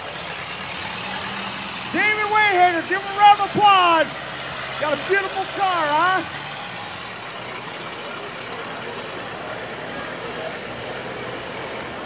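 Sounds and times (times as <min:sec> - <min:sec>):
race car engine running: 0:00.0 - 0:12.0.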